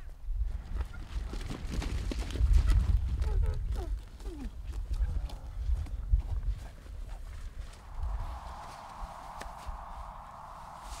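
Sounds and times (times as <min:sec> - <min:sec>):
strong wind buffeting microphone: 0:00.3 - 0:04.0, 0:05.5 - 0:11.0
steady hiss: 0:07.8 - 0:11.0.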